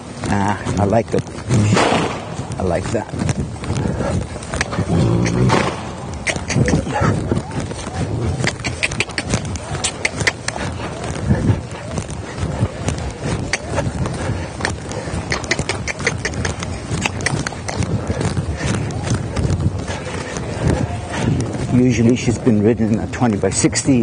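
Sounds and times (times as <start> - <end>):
horse hoofbeats trotting: 0.0 - 24.0
sharp clicks: 4.4 - 7.0, 8.4 - 11.2, 14.6 - 17.9.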